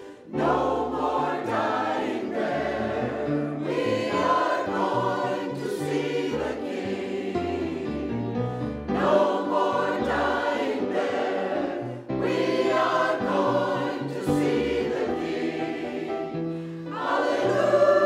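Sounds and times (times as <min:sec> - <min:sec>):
mixed choir singing: 0:00.0 - 0:18.0.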